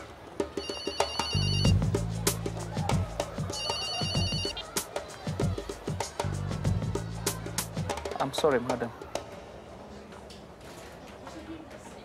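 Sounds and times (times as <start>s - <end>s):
background music with soft beat: 0.5s - 9.3s
mobile phone ringing: 0.6s - 1.8s, 3.6s - 4.6s.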